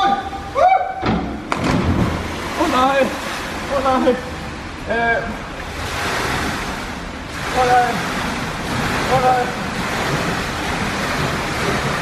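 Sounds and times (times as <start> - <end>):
swimming pool water splashing: 0.0 - 12.0.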